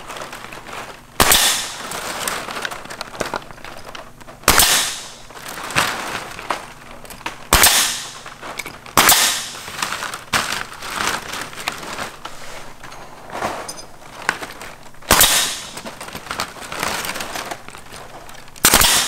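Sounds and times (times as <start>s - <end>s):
nail gun shots: 1.2s - 1.9s, 4.4s - 5.2s, 7.5s - 8.2s, 9.0s - 9.6s, 15.1s - 15.8s, 18.6s - 19.0s.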